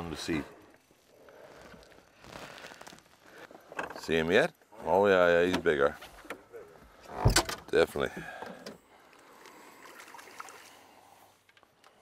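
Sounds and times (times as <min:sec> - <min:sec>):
faint water and boat noise: 0:00.0 - 0:12.0.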